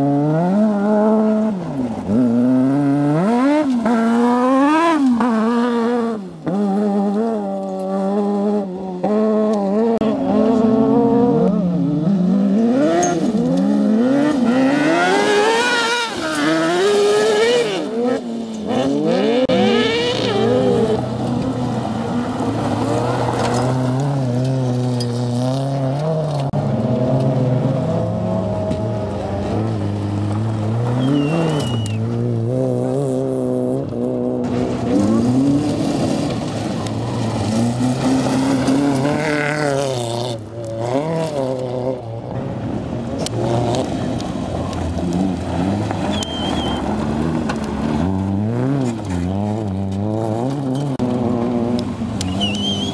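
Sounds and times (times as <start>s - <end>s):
car engines revving: 0.0s - 52.9s.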